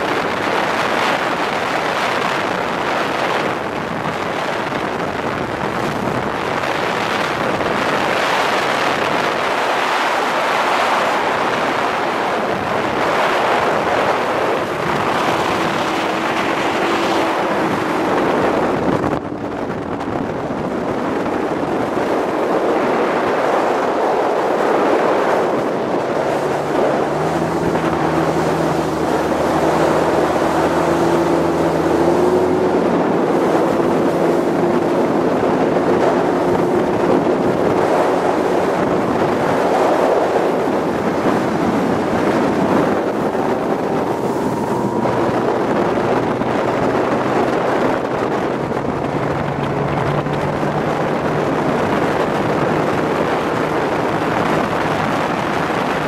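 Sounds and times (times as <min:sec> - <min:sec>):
outboard motor droning: 0:00.0 - 0:56.0
wind buffeting microphone: 0:00.0 - 0:56.0.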